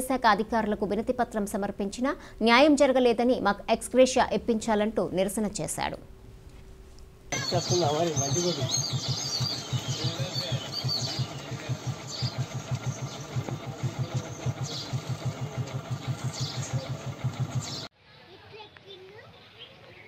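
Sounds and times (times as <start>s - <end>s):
high chirps: 7.3s - 13.4s
small engine idling: 7.3s - 17.9s
voices: 7.3s - 20.0s.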